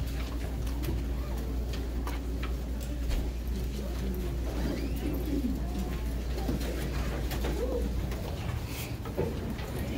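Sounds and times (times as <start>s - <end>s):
murmur of students' voices: 0.0s - 9.9s.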